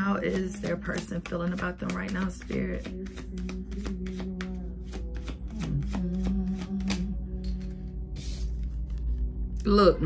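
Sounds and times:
cards being shuffled: 0:00.2 - 0:09.3.

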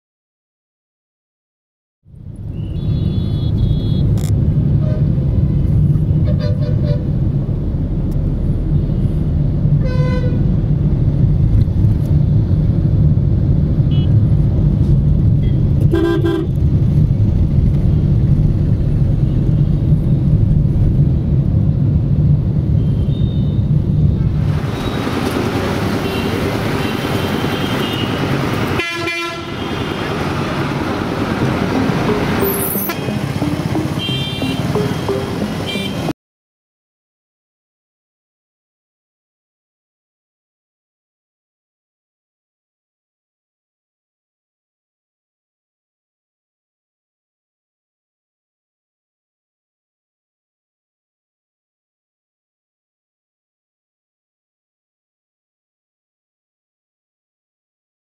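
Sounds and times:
street noise: 0:02.0 - 0:36.2
vehicle engine and road rumble: 0:02.0 - 0:36.2
vehicle horns tooting: 0:02.6 - 0:04.2, 0:26.0 - 0:30.4, 0:32.4 - 0:36.1.

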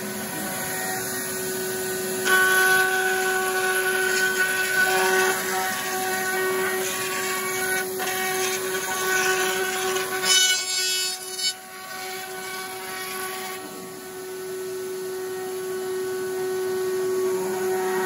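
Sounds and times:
router bit cutting wood: 0:00.0 - 0:18.0
router high whine: 0:00.0 - 0:18.0.

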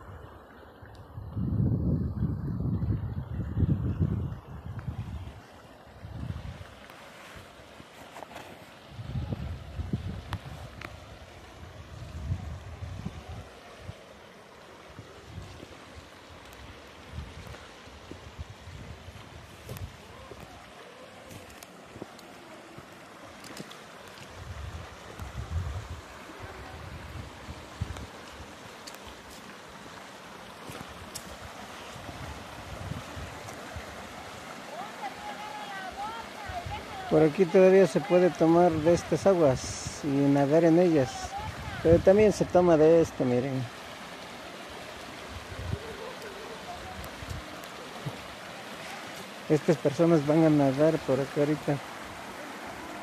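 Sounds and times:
river running over rocks: 0:00.0 - 0:53.0
wind buffeting microphone: 0:01.1 - 0:05.4, 0:06.0 - 0:06.7, 0:08.9 - 0:14.0, 0:24.3 - 0:28.2, 0:30.9 - 0:34.4
steady faint hiss: 0:03.6 - 0:53.0.

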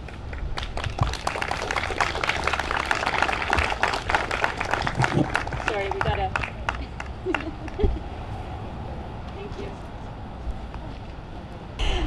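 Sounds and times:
outdoor background hum: 0:00.0 - 0:12.0
woman laughing: 0:06.8 - 0:08.0.

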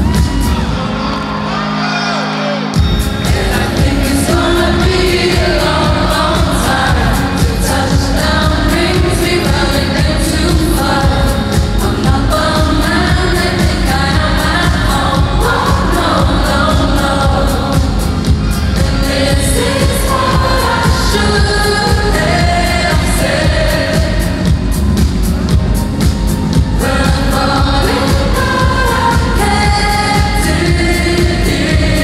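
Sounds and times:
loud dance-pop music: 0:00.0 - 0:32.0
woman singing into microphone: 0:02.8 - 0:24.8, 0:26.6 - 0:32.0.

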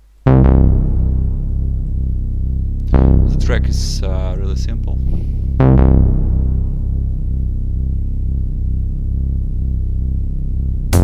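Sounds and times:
deep synth bass note: 0:00.3 - 0:11.0.

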